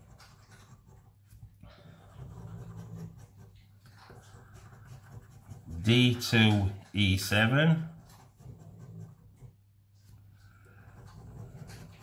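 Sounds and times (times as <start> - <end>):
coin scratching scratch card: 2.1 - 6.6.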